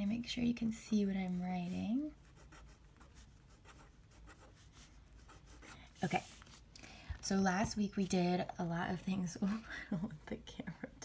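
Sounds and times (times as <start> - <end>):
pen scratching on paper: 2.2 - 6.5.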